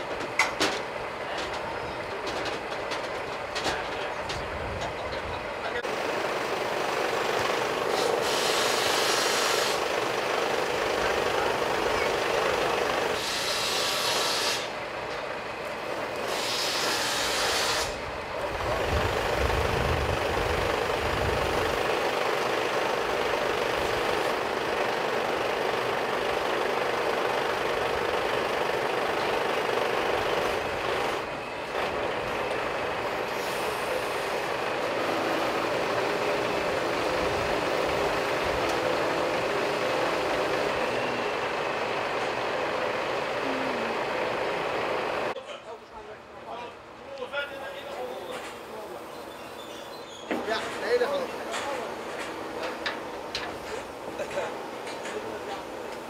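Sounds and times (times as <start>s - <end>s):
truck engine and hydraulics drone: 0.0s - 45.4s, 46.0s - 56.0s.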